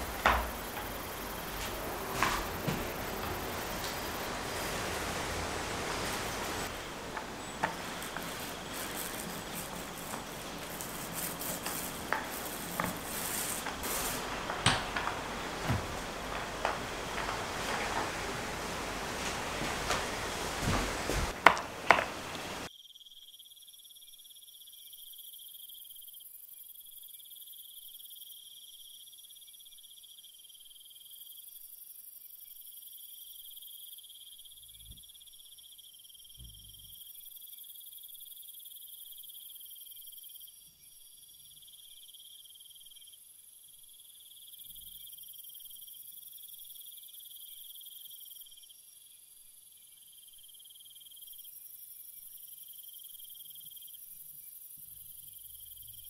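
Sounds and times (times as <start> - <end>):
insects trilling: 0.0 - 56.0.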